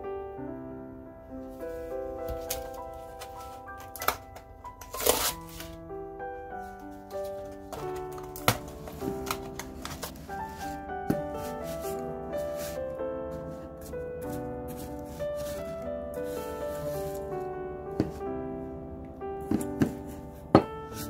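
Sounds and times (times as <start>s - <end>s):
soft background music: 0.0s - 21.0s.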